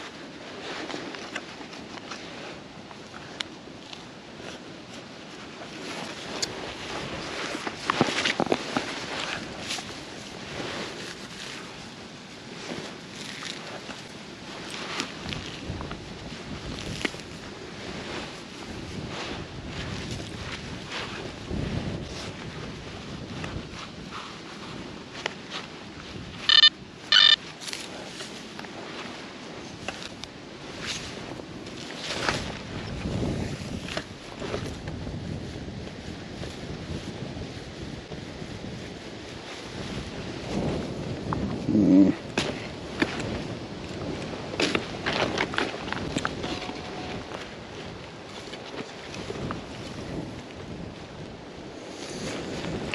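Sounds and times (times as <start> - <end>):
wind on microphone: 0.0 - 52.9
hands crumbling soil: 3.1 - 22.8
metal detector beeps: 26.4 - 27.4, 46.4 - 47.3.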